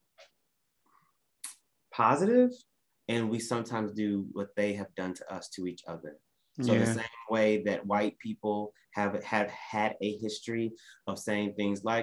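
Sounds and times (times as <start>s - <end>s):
man speaking: 1.9s - 12.0s.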